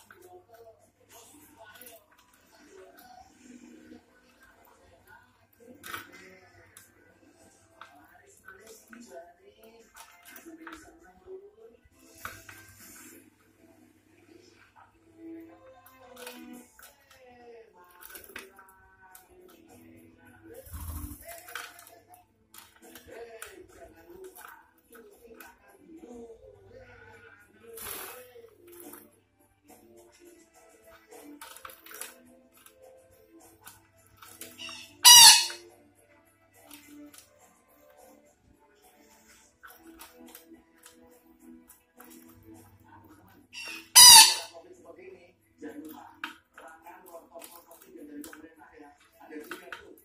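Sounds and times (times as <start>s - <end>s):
parakeet squawking: 34.4s - 35.6s, 43.5s - 44.6s
faint short bird calls: 34.6s - 35.6s.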